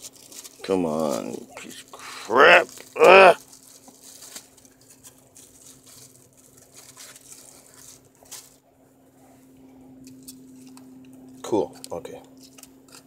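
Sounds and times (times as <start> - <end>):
plastic bag crinkling: 0.0 - 8.6
low steady hum: 0.0 - 13.0.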